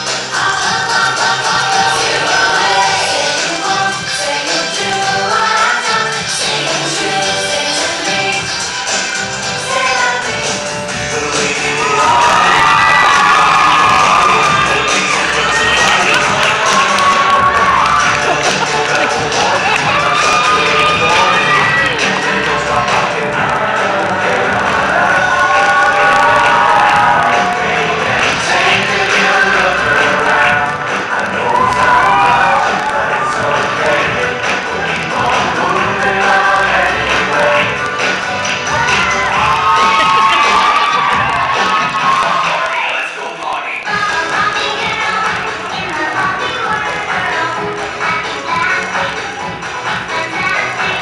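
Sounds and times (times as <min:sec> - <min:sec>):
pop songs over loudspeakers: 0:00.0 - 0:51.0
audience cheering and shouting: 0:11.0 - 0:43.2.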